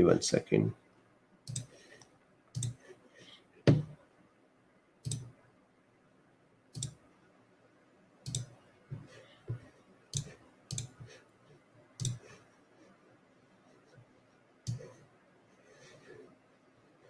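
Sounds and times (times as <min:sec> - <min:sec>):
computer mouse clicks: 0:01.4 - 0:02.8, 0:05.0 - 0:05.4, 0:06.7 - 0:07.0, 0:08.2 - 0:08.6, 0:10.1 - 0:11.1, 0:12.0 - 0:12.4, 0:14.6 - 0:15.0.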